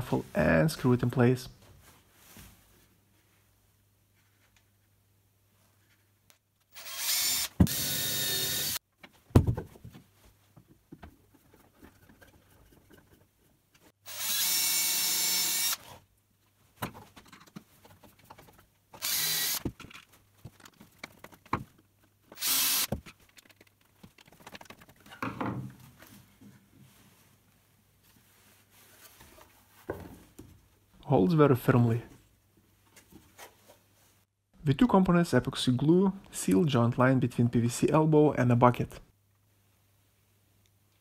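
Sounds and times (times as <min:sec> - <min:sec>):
cordless drill driving screws: 0:06.7 - 0:08.8, 0:14.1 - 0:16.0, 0:19.0 - 0:19.7, 0:22.4 - 0:23.0.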